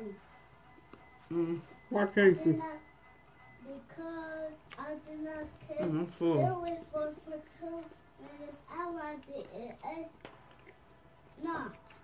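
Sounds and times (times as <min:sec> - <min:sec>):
child singing: 0:03.6 - 0:10.2.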